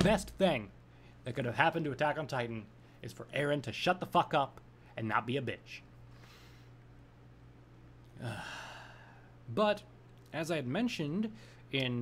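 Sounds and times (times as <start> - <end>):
man sighing: 8.1 - 9.3.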